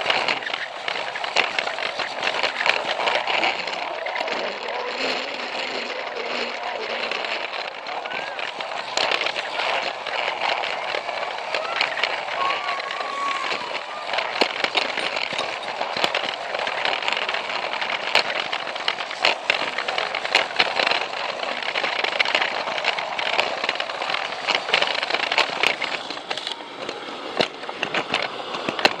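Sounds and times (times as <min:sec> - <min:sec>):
irregular clicks of toy train: 0:00.0 - 0:29.0
toy train whirring: 0:00.0 - 0:29.0.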